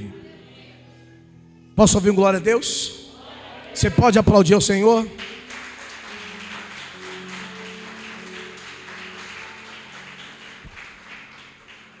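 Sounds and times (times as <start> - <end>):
soft instrumental chords: 0.0 - 12.0
congregation applauding: 3.6 - 12.0.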